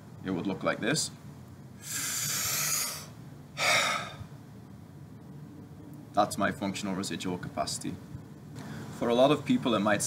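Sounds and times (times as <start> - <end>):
man breathing in: 1.8 - 4.3
man sighing breath out: 1.8 - 4.3.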